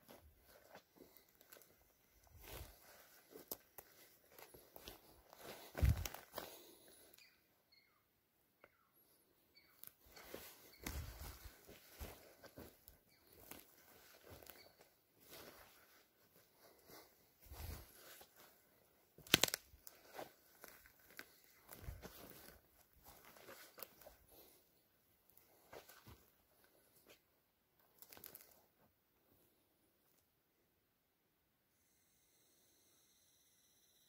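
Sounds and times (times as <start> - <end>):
footsteps crunching through undergrowth: 0.0 - 7.1, 9.8 - 24.6, 25.3 - 27.2, 27.9 - 28.6
twig cracking: 19.2 - 21.4.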